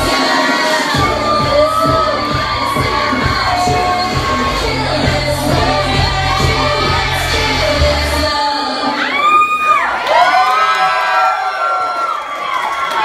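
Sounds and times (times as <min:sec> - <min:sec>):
pop music with heavy bass: 0:00.0 - 0:09.3
audience cheering and screaming: 0:00.0 - 0:13.0.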